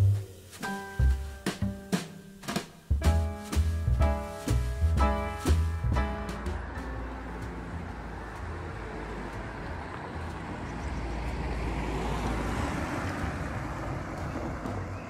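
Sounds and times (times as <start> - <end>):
car engine and tyre noise: 3.0 - 15.0.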